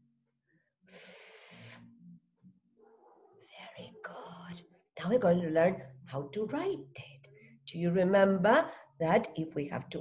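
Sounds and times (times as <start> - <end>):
woman making breathy f sound: 0.9 - 1.9.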